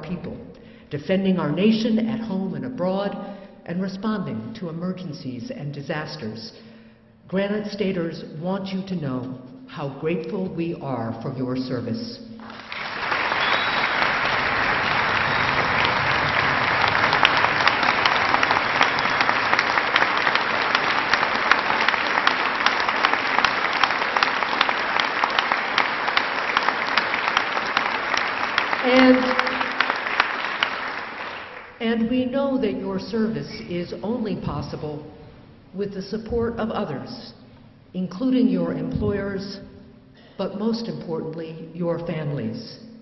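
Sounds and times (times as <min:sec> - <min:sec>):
audience applauding: 0:12.4 - 0:31.8.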